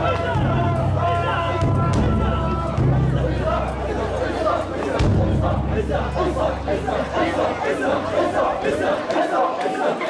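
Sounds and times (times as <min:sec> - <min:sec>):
steady low rumble: 0:00.0 - 0:09.0
crowd shouting and calling: 0:00.0 - 0:10.0.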